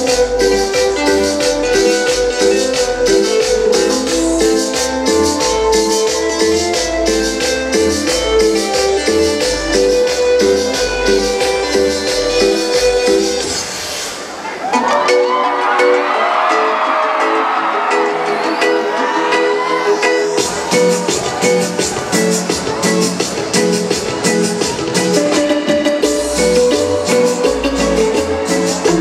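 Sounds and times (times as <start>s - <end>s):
repeating keyboard riff: 0.0s - 14.0s, 14.8s - 29.0s
electronic cumbia music: 0.0s - 29.0s.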